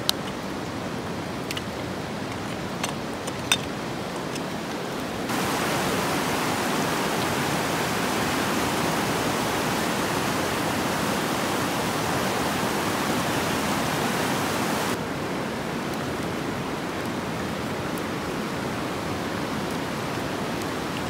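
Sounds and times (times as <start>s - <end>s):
running water rushing: 0.0s - 21.0s.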